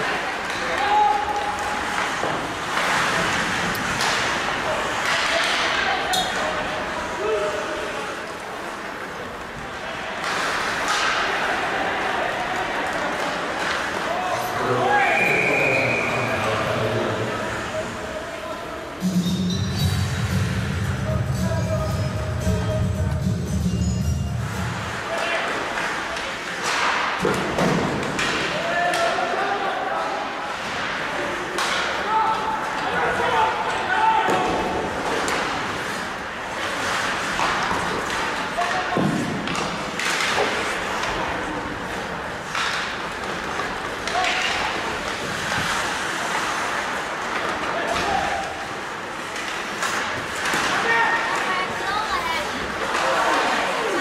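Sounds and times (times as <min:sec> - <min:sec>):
knocks of sticks and puck: 0:00.0 - 0:07.0, 0:08.2 - 0:14.6, 0:24.9 - 0:29.4, 0:30.5 - 0:54.0
echoing rink noise: 0:00.0 - 0:54.0
players' voices: 0:00.0 - 0:54.0
skate blades scraping ice: 0:01.4 - 0:05.2, 0:08.2 - 0:14.2, 0:34.9 - 0:54.0.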